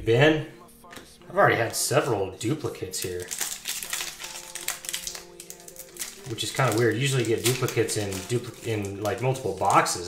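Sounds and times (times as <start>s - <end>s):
faint held musical tones: 0.0s - 10.0s
foil wrapper crinkling: 2.9s - 10.0s.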